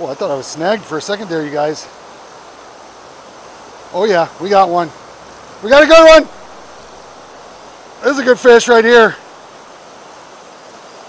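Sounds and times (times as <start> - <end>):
river water rushing: 0.0 - 11.0.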